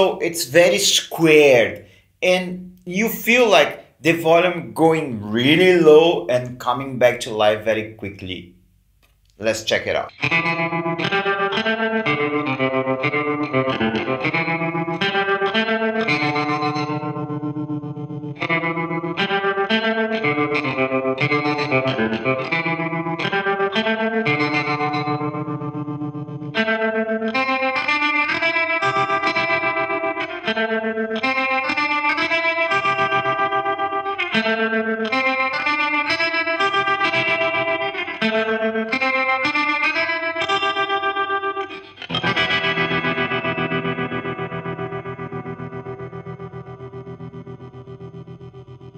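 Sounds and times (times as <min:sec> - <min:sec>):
electric guitar chords with tremolo: 0:10.1 - 0:48.9.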